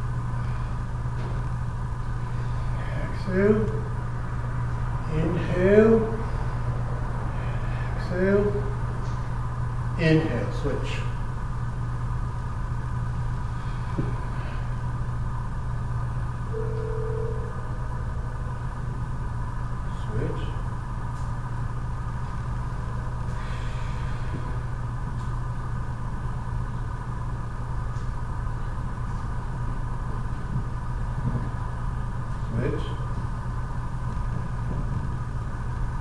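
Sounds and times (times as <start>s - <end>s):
machinery humming: 0.0s - 36.0s
high whine: 12.6s - 20.6s.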